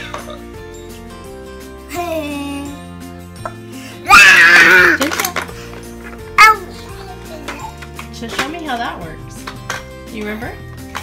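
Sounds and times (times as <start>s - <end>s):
cheerful background music: 0.0s - 11.0s
child vocal sounds: 4.0s - 5.1s, 6.4s - 6.7s
young child squealing: 4.1s - 5.0s.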